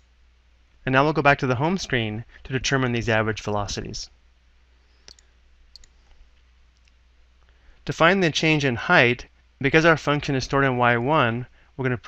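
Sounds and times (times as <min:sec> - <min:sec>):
low steady hum: 0:00.0 - 0:12.0
computer mouse clicks: 0:04.9 - 0:06.2.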